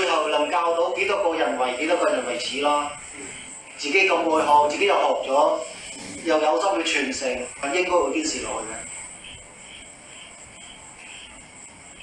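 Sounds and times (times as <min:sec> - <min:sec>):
crickets trilling and chirping: 0:00.0 - 0:12.0.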